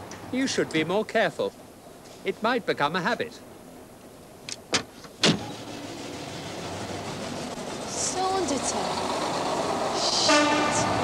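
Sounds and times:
train rushing rumble: 5.4 - 11.0.

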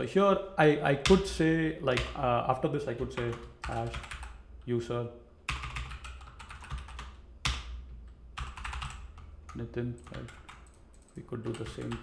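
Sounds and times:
typing on computer keyboard: 3.2 - 4.4, 5.5 - 7.8, 8.4 - 12.0.

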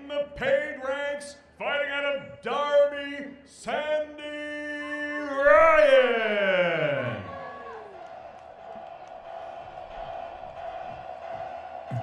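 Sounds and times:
heavy beat: 8.5 - 12.0.

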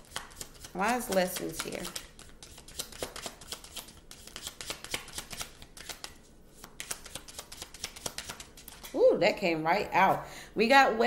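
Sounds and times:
cards being shuffled by hand: 0.0 - 9.0.

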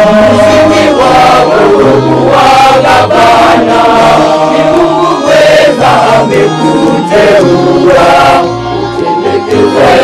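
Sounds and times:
male choir singing: 0.0 - 10.0.

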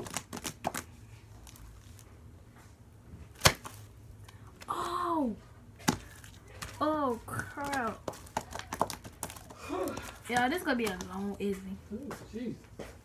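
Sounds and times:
slime snapping and popping: 3.4 - 3.8
girl making wordless sounds: 4.6 - 5.4.

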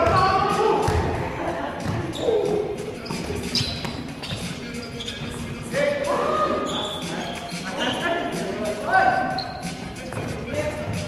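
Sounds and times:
players' voices: 0.0 - 11.0
basketball bouncing on floor: 0.8 - 1.1.

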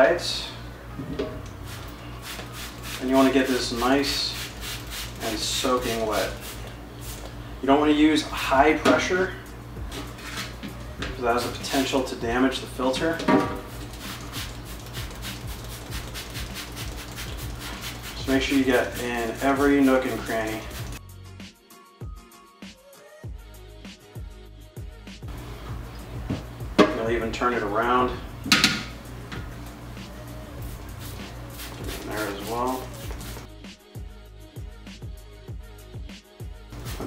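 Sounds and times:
quiet background music: 0.0 - 37.0
spray bottle hissing squirts: 1.6 - 3.3, 4.1 - 5.4, 13.6 - 21.0, 30.6 - 33.5.

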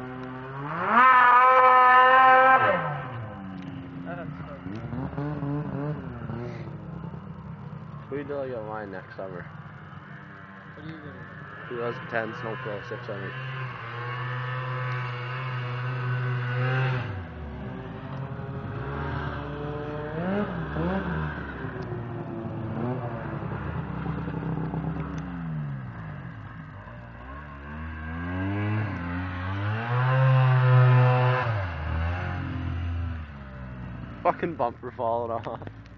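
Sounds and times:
snowmobile engines revving: 0.0 - 35.9.

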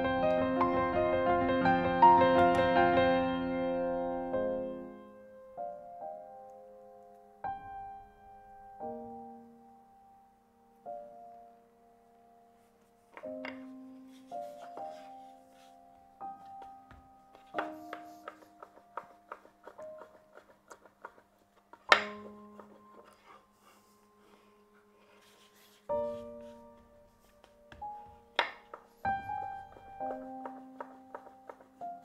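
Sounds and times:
soft piano music: 0.0 - 32.0.

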